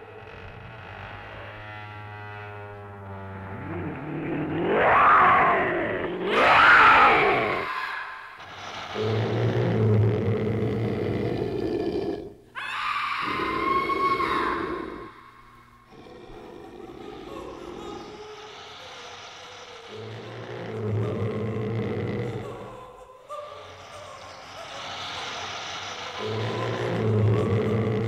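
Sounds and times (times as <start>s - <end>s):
low eerie drone: 0.0s - 28.0s
monstrous groans: 2.3s - 28.0s
rough roar: 3.4s - 12.4s, 13.2s - 17.8s, 19.8s - 22.5s, 26.1s - 28.0s
high wail: 4.6s - 8.4s, 12.6s - 15.4s.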